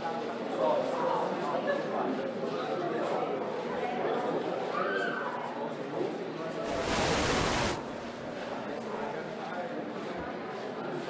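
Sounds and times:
crowd chatter in a large hall: 0.0s - 11.0s
loud hiss: 6.7s - 8.4s.

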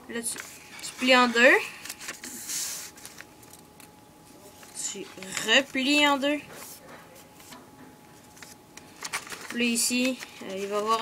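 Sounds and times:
paper rustle: 0.3s - 3.6s, 4.5s - 7.6s, 8.2s - 11.0s
paper being folded and creased: 8.4s - 11.0s.

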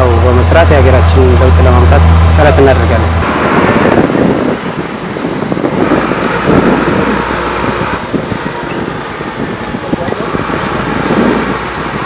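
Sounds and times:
heavy trucks rumbling past: 0.0s - 12.0s.

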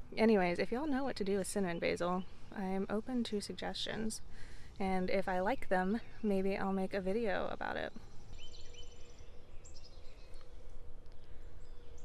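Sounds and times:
faint bird chirps: 7.2s - 12.0s.

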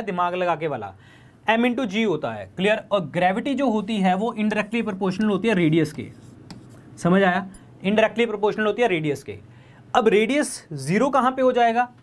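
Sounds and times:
pen writing on a display board: 3.9s - 6.8s.

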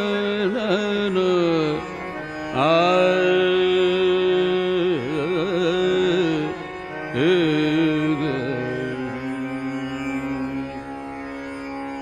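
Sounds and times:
devotional song: 0.0s - 12.0s.

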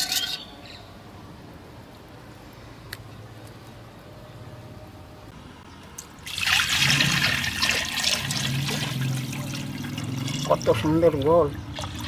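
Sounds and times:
liquid pouring and splashing: 6.2s - 12.0s.

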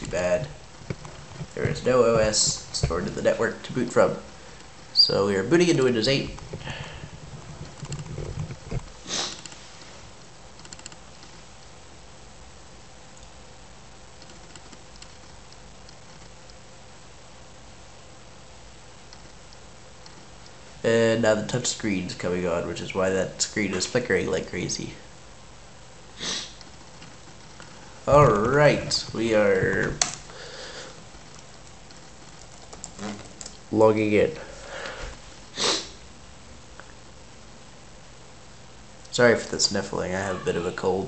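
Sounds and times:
faint background noise: 0.0s - 41.0s
person sniffing: 9.0s - 9.8s, 26.2s - 26.6s, 30.3s - 31.0s, 34.5s - 36.0s
faint clicks: 10.6s - 11.7s, 14.2s - 16.6s.

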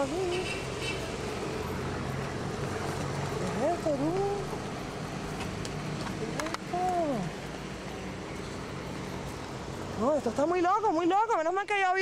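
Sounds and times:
traffic hum: 0.0s - 12.0s.

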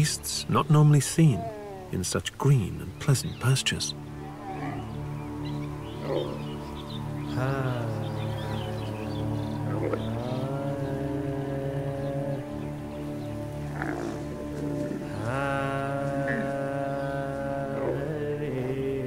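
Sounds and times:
camels calling: 0.0s - 19.0s
steady musical score: 0.0s - 19.0s.

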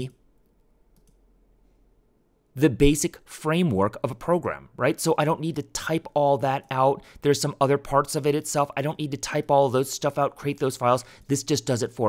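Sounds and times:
computer mouse clicks: 0.4s - 1.2s.

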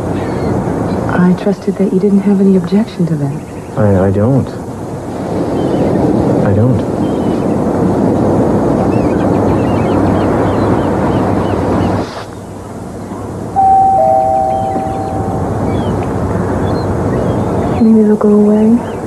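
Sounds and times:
loud rushing ambience: 12.7s - 17.6s
faint high chirps: 13.6s - 16.2s
held two-note music chord: 13.6s - 16.2s.

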